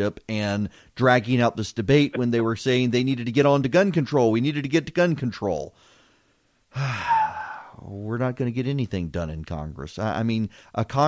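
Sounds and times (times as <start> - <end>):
man sighing: 6.7 - 7.8.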